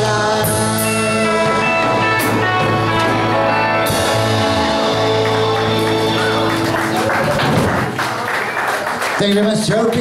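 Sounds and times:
band playing a song: 0.0s - 10.0s
audience applauding: 3.0s - 10.0s.

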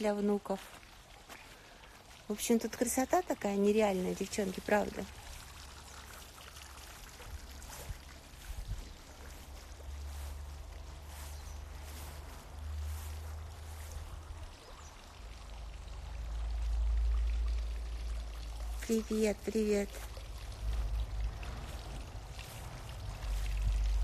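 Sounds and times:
garden fountain trickling: 0.0s - 24.0s
low rumble on microphone: 7.2s - 14.6s, 20.0s - 24.0s.

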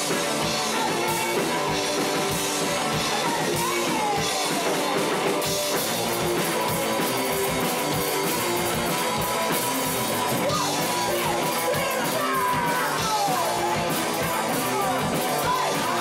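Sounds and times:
drum kit beat: 0.0s - 16.0s
electric guitar riff: 0.0s - 16.0s.

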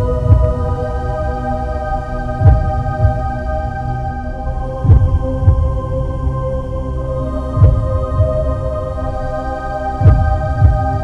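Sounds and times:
low heartbeat-like thump: 0.0s - 1.0s, 2.4s - 3.5s, 4.8s - 6.2s, 7.6s - 8.6s, 10.0s - 11.0s.

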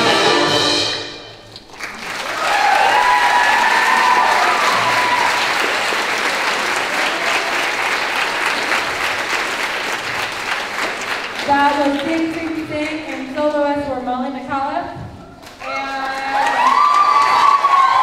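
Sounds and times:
jazz band chord: 0.0s - 1.5s
audience applauding: 1.5s - 13.5s, 15.4s - 18.0s
audience cheering: 1.7s - 11.4s, 15.6s - 18.0s.

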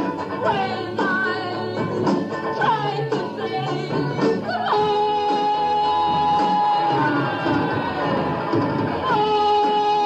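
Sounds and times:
post-punk band playing live: 0.0s - 10.0s
drum hits: 6.4s - 9.3s.

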